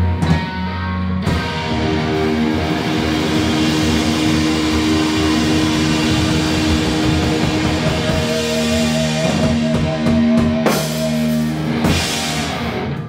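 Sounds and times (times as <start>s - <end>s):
heavy metal band playing live: 0.0s - 13.0s.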